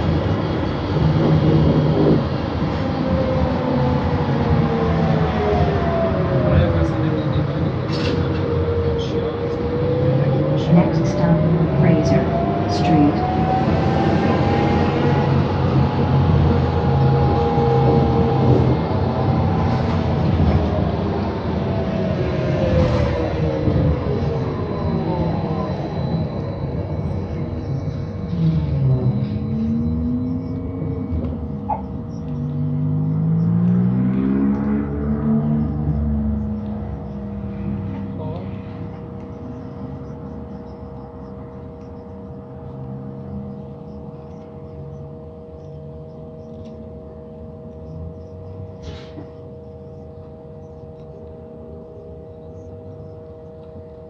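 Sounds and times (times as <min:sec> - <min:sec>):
bus drivetrain whine: 0:00.0 - 0:54.0
bus engine hum: 0:00.0 - 0:54.0.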